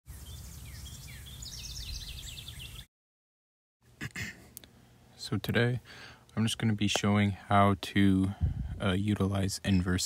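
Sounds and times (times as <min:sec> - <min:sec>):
birds chirping: 0:00.1 - 0:02.9, 0:09.2 - 0:10.0
low outdoor rumble: 0:04.0 - 0:10.0.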